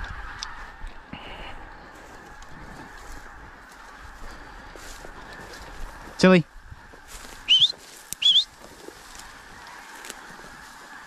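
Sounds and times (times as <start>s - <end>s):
animal squeaky call: 7.5s - 8.5s.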